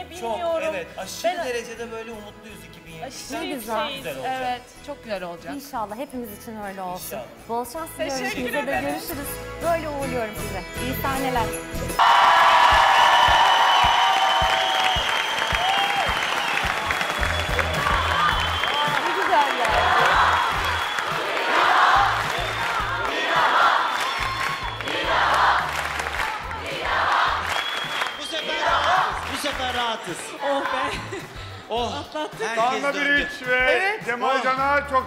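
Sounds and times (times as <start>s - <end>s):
music playing: 0.0s - 35.0s
audience cheering and applauding: 12.0s - 31.2s.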